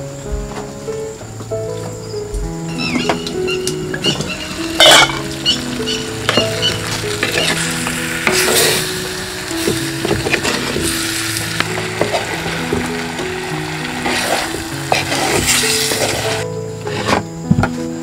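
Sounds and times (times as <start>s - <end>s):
background music: 0.0s - 18.0s
curry sizzling in a pot: 2.8s - 17.1s
wooden spoon scraping a pot: 4.1s - 7.6s, 14.0s - 17.2s.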